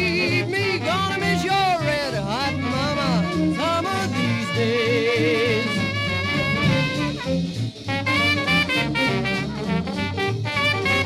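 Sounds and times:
jazz band music from vinyl: 0.0s - 11.0s.

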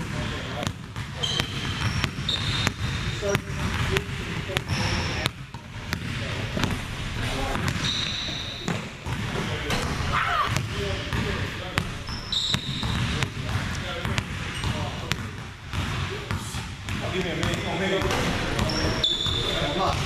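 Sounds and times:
basketball bouncing on wooden floor: 0.0s - 20.0s
sneakers squeaking: 0.0s - 20.0s.

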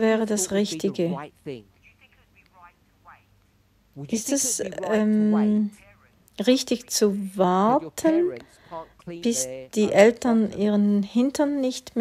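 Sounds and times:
person asking a question: 0.0s - 3.3s, 4.0s - 12.0s.

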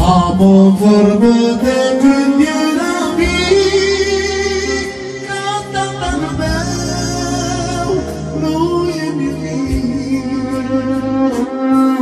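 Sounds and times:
band accompaniment: 0.0s - 12.0s.

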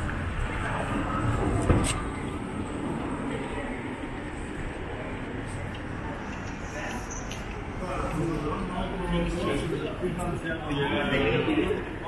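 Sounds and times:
people talking: 0.0s - 12.0s
traffic rumble: 0.0s - 12.0s.

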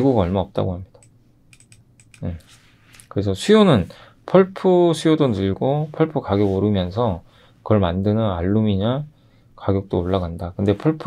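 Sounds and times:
computer keyboard clicks: 1.0s - 2.3s.

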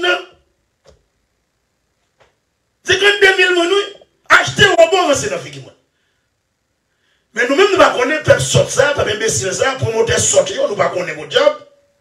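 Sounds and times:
man talking: 2.8s - 5.8s, 7.4s - 11.7s.

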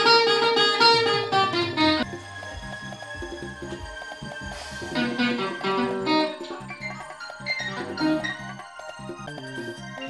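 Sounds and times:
acoustic guitar picking: 0.0s - 2.0s.

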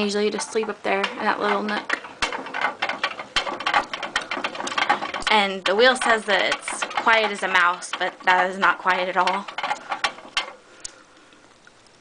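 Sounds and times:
hamster wheel clicking rattle: 0.0s - 10.9s.

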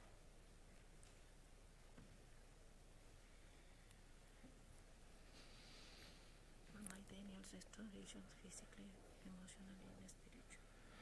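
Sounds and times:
whispering: 6.7s - 10.8s.

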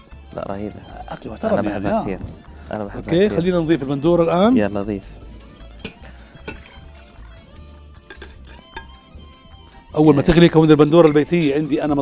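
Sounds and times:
quiet background music: 0.0s - 12.0s
metal spoon clinking on glass bowl: 5.8s - 7.3s, 8.0s - 9.1s, 10.3s - 11.9s
sauce pouring into pot: 5.8s - 9.1s.

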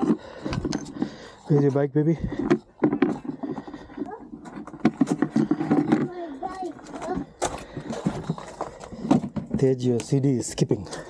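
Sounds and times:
plastic bucket clacks and knocks: 0.0s - 10.2s.

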